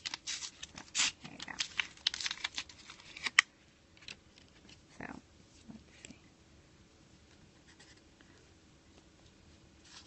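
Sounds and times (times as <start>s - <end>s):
soft rustle: 9.0s - 10.0s.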